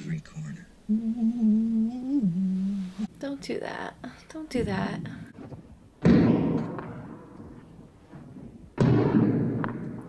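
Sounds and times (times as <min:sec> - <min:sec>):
tennis ball banging in hall: 0:06.0 - 0:10.0.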